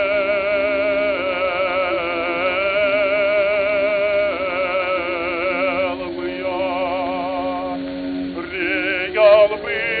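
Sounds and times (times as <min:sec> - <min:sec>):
sustained accompaniment note: 0:00.0 - 0:10.0
tenor singing opera: 0:00.0 - 0:10.0.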